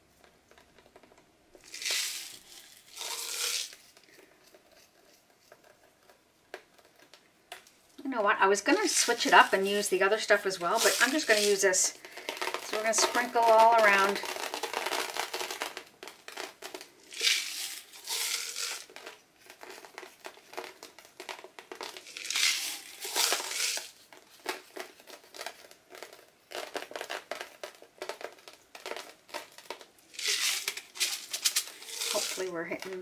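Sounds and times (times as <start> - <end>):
dry filler crinkling and rustling: 0.0 - 33.0.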